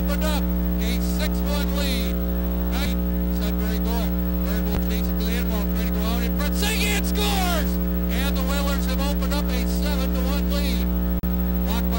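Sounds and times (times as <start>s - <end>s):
loud electrical hum: 0.0s - 11.9s.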